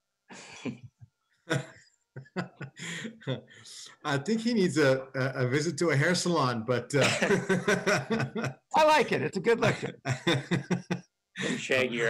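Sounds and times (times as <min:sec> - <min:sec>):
person laughing over video call: 0:01.5 - 0:03.4, 0:06.9 - 0:11.8.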